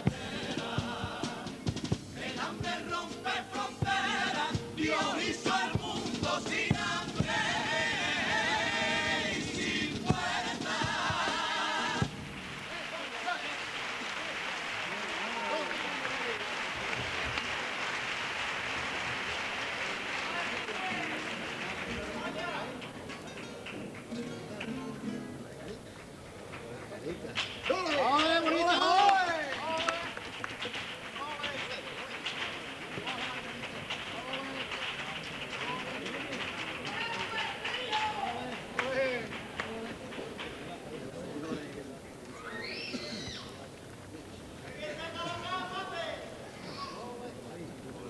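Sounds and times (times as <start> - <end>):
male choir singing: 0.0 - 12.3
guitars playing: 0.0 - 12.4, 20.9 - 25.8
audience applauding and cheering: 3.9 - 24.7, 27.6 - 40.5
voices and shouts in crowd: 27.6 - 30.2, 30.9 - 47.6.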